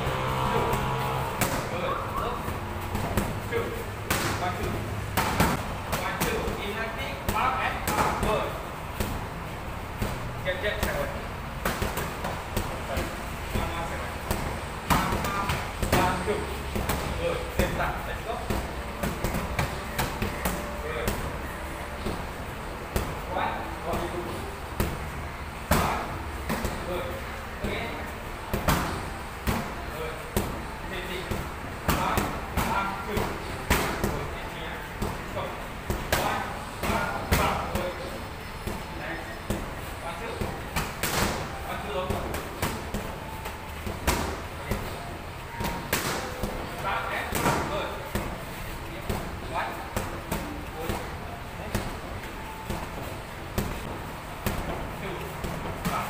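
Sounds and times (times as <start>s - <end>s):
punches slapping on pads: 40.4s - 45.0s.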